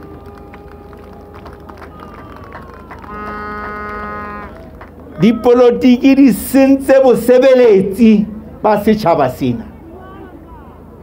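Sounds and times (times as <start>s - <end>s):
faint outdoor background noise: 0.0s - 11.0s
horn-like tone: 3.0s - 4.6s.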